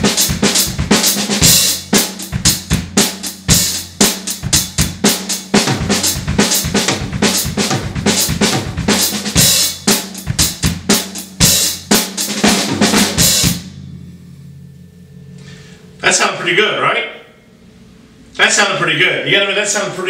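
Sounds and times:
drum kit playing fast: 0.0 - 16.9
cymbal crashes: 0.0 - 18.8.

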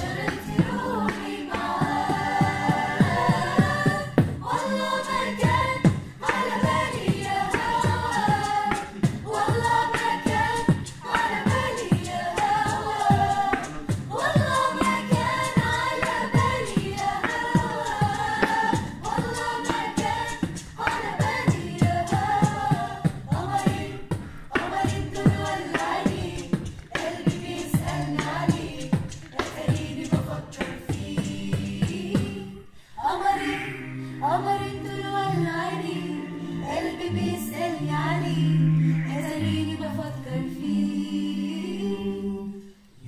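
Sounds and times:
beatboxed beat: 0.0 - 32.7
choir singing in harmony: 0.0 - 43.0.

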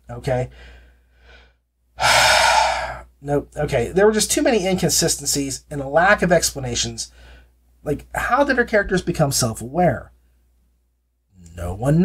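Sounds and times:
faint breath: 0.5 - 3.0, 7.1 - 7.6
man sighing: 2.0 - 3.0.

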